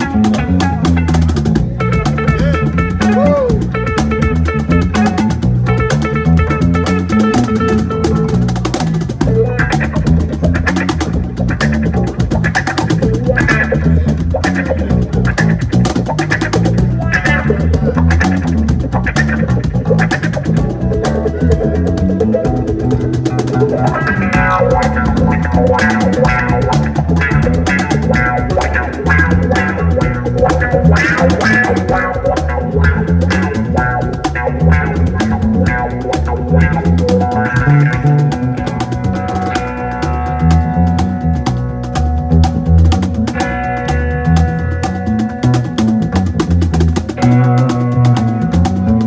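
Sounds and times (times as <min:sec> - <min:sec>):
cigar box guitar melody: 0:00.0 - 0:49.0
deep bass line: 0:00.0 - 0:49.0
slapped cajon beat: 0:00.0 - 0:49.0.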